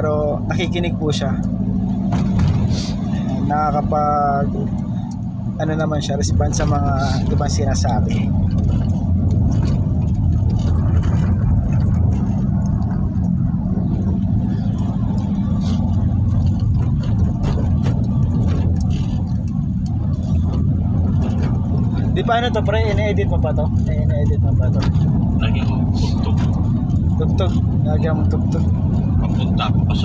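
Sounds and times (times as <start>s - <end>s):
car engine and tyre rumble: 0.0s - 30.0s.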